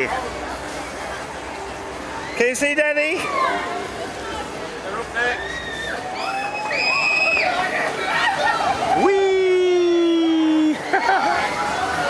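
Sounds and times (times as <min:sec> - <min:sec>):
children shrieking: 0:05.2 - 0:12.0.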